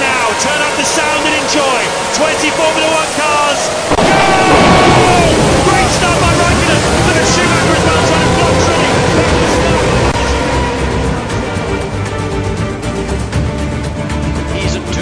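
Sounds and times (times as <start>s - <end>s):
commentator speaking: 0.0s - 10.5s, 14.5s - 15.0s
racing cars at full throttle: 0.0s - 14.8s.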